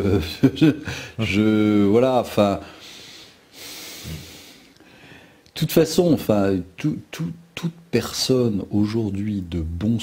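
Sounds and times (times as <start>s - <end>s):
man drawing a noisy breath: 2.6s - 5.5s.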